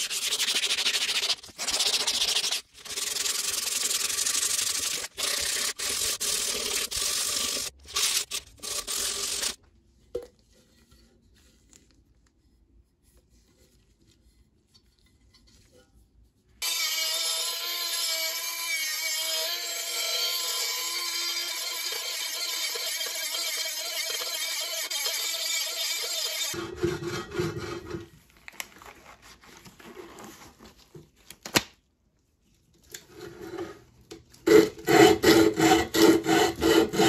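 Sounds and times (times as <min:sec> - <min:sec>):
sandpaper rubbing on metal: 0:00.0 - 0:09.6
rotary tool grinding metal: 0:02.3 - 0:09.6, 0:16.6 - 0:28.0.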